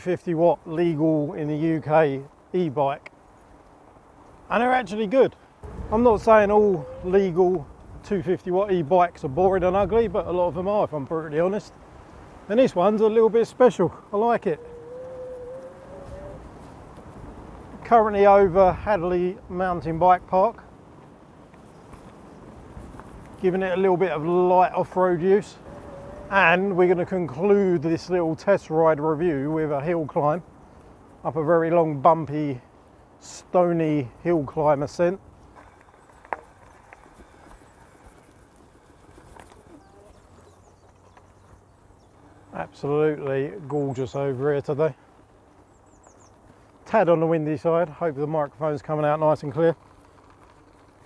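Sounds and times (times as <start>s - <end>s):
tyres rumbling on dirt: 4.5s - 11.8s, 33.6s - 51.0s
wind on microphone: 5.6s - 8.3s, 9.0s - 10.7s, 14.5s - 23.4s, 25.0s - 26.6s.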